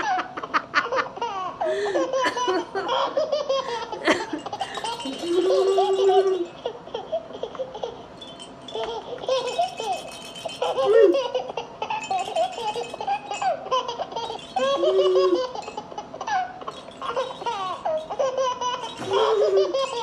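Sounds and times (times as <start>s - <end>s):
woman laughing: 0.0s - 6.6s, 10.6s - 11.4s, 14.3s - 15.8s, 18.9s - 20.0s
baby rattle chime jingling: 3.8s - 20.0s.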